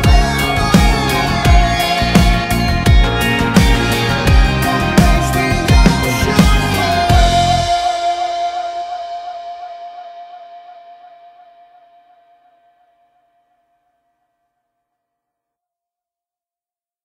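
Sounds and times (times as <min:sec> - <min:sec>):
electronic held note with waver: 0:00.0 - 0:12.5.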